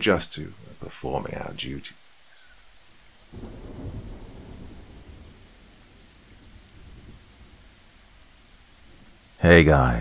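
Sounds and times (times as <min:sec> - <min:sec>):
rain hissing: 0:00.0 - 0:10.0
rumble of thunder: 0:03.3 - 0:09.3.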